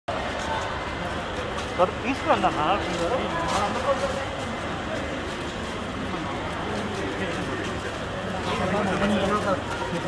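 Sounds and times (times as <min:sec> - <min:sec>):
faint indistinct voices: 0:00.1 - 0:10.0
group of people walking: 0:00.1 - 0:10.0.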